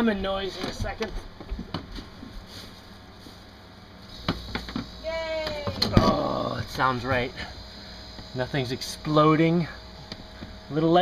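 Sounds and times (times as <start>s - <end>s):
refrigerator compressor humming: 0.0s - 11.0s.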